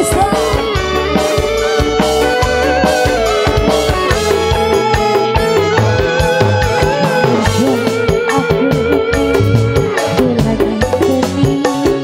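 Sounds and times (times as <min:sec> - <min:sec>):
live band over pa: 0:00.0 - 0:12.0.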